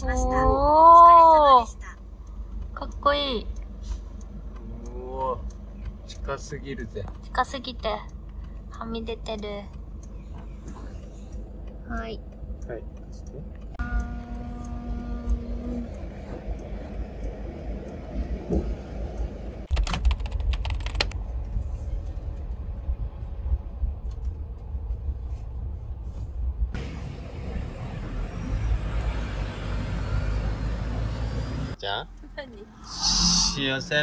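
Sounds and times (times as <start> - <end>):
engine and road rumble: 0.0 - 34.0
sharp clicks: 1.0 - 21.2
steady electronic tone: 13.8 - 17.2, 32.8 - 34.0.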